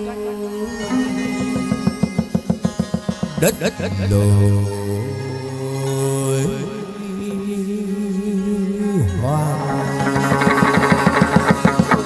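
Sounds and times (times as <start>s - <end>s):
plucked string instrument playing: 0.0s - 12.0s.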